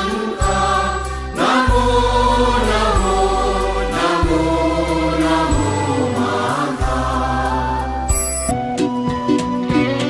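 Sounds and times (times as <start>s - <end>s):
choir singing long notes: 0.0s - 8.2s.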